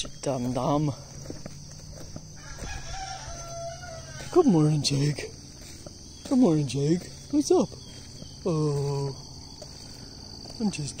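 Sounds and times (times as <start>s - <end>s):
insect chirring: 0.0s - 11.0s
rooster crowing: 2.2s - 5.4s.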